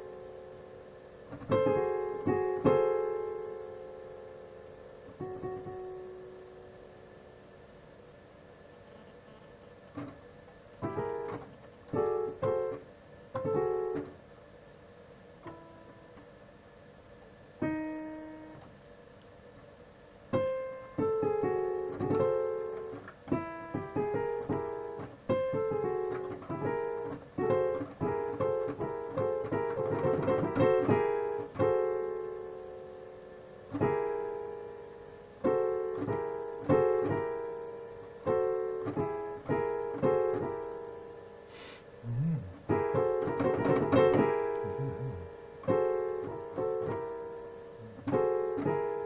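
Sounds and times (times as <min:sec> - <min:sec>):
digital piano notes and chords: 0:42.1 - 0:49.0.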